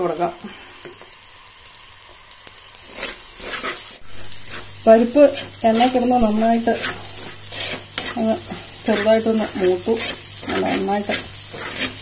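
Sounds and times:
food sizzling in a pot: 0.0s - 12.0s
wooden spatula scraping: 2.8s - 12.0s.

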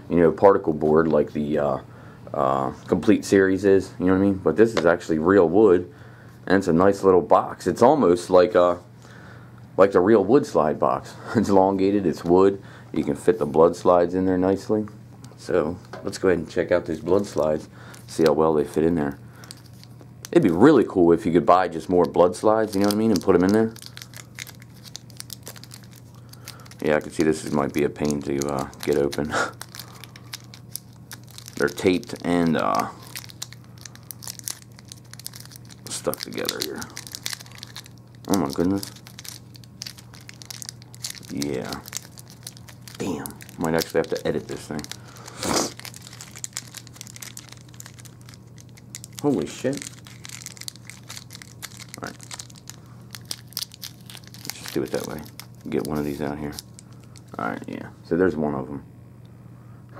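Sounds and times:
plastic packaging crinkling: 17.0s - 20.7s, 21.5s - 57.8s.

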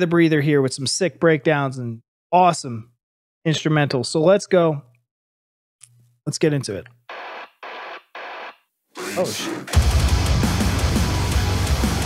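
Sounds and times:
radio static bursts: 7.1s - 9.9s
metalcore music: 9.0s - 12.0s.

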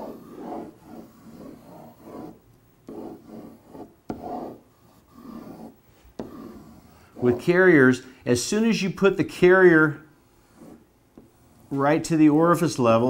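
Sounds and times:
marker drawing on whiteboard: 0.0s - 12.8s.

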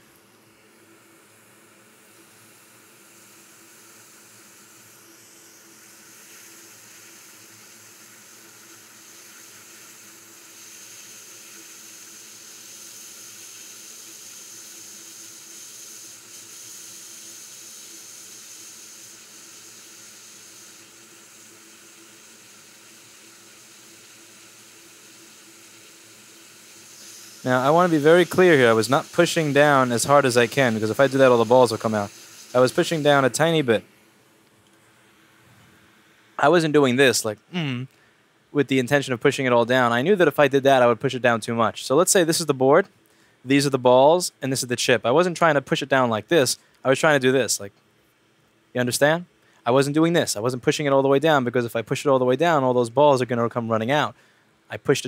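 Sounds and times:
hot air blower hissing: 1.0s - 34.0s
higher hissing tone: 2.7s - 33.9s, 36.3s - 37.9s.

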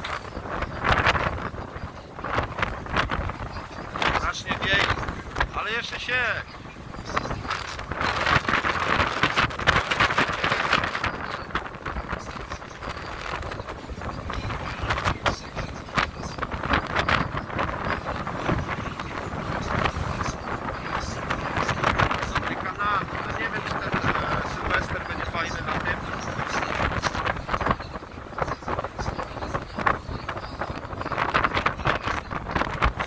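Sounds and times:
boat engine running: 0.0s - 33.0s
water churning and splashing: 0.0s - 33.0s
wind gusting over microphone: 0.0s - 33.0s.

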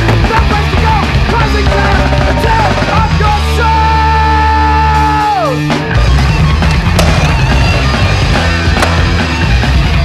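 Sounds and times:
fast hardcore punk song: 0.0s - 10.0s.

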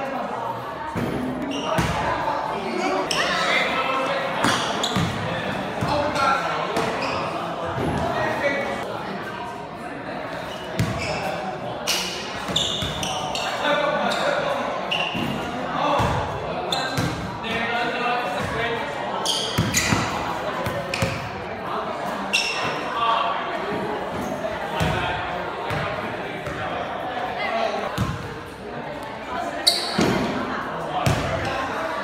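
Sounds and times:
players' indistinct voices: 0.0s - 32.0s.

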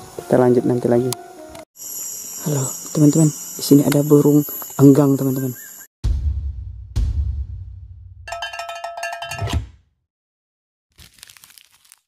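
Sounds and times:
bell-like tones: 8.3s - 9.5s
ticking percussion jingle: 8.3s - 9.5s.

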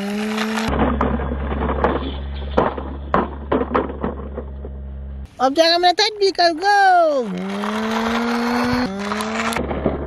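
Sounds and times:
steady low hum: 0.7s - 5.6s
drawn-out pitched sound: 6.7s - 9.7s.

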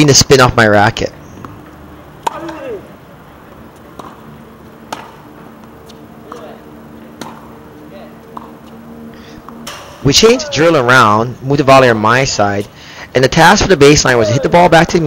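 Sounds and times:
tennis balls struck and bouncing: 1.2s - 12.7s.

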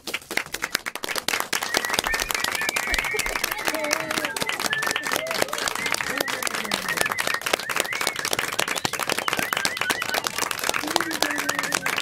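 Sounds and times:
group clapping: 0.0s - 12.0s
person whistling: 0.5s - 12.0s.

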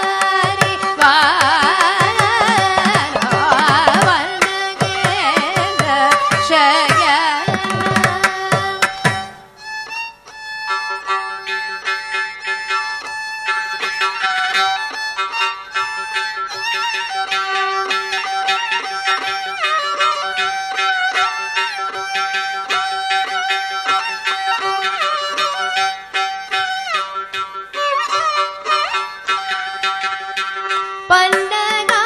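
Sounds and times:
violin melody with slides: 0.0s - 32.0s
rapid hand drum strokes: 1.4s - 9.3s.

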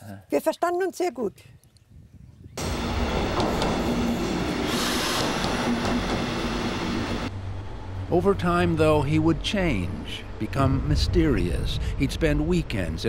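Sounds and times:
train wheels passing platform: 2.6s - 8.1s
low hum: 6.4s - 13.0s.

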